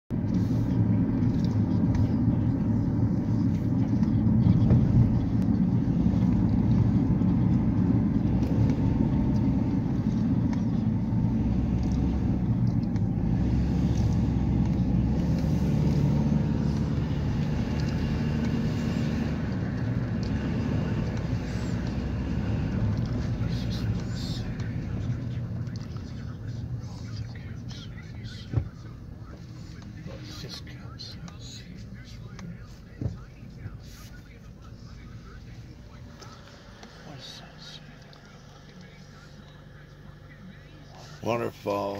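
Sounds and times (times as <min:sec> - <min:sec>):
tyres and engine rumble: 0:00.1 - 0:41.9.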